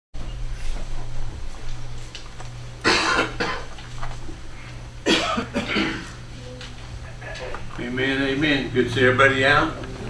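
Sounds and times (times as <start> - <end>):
low electrical hum: 0.2 - 10.0
person coughing: 2.8 - 3.7, 5.0 - 6.2.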